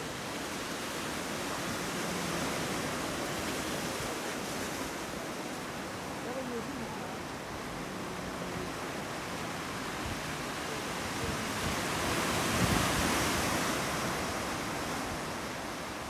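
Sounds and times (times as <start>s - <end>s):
ocean surf washing onto beach: 0.0s - 16.0s.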